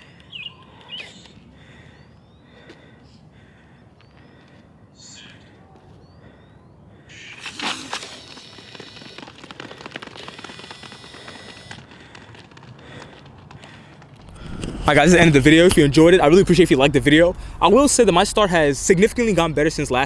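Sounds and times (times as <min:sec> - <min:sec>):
running footfalls on track: 0:08.0 - 0:15.8.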